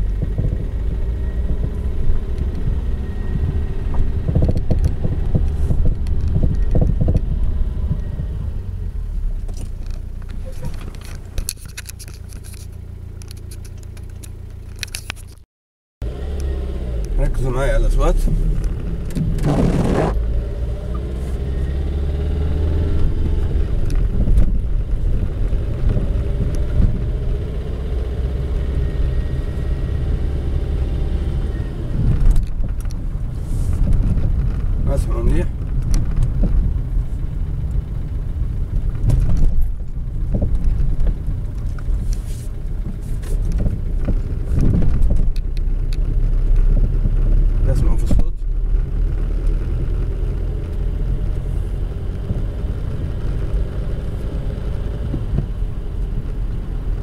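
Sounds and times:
low rumble of tyres: 0.0 - 15.4, 16.0 - 57.0.

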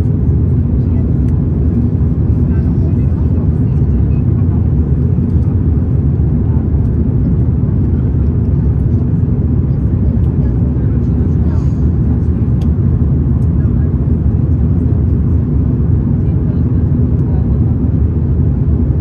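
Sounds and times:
airplane cabin engine rumble: 0.0 - 19.0.

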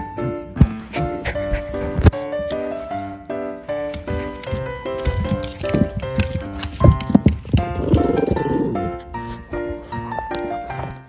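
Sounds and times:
background music: 0.0 - 11.0
rough rasping animal sound: 4.1 - 10.2.

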